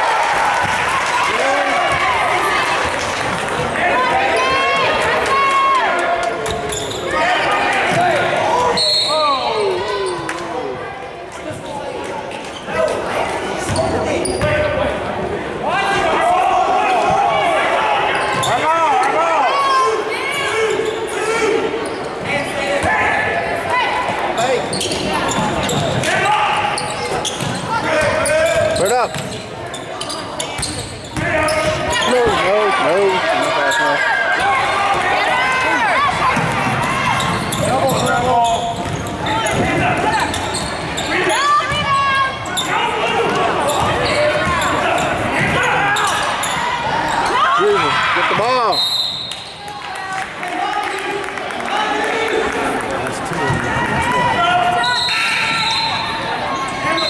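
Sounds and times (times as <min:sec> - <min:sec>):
shouts and chatter: 0:00.0 - 0:57.0.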